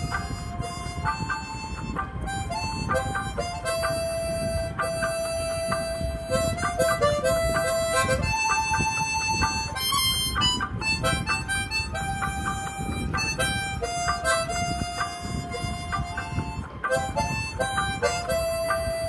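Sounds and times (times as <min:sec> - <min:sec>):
harmonica melody: 0:00.0 - 0:19.0
karaoke backing track: 0:00.0 - 0:19.0.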